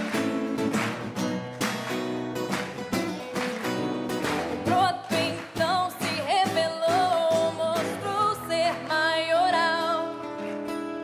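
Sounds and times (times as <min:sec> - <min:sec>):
acoustic guitars strumming: 0:00.0 - 0:11.0
woman singing: 0:04.6 - 0:10.5.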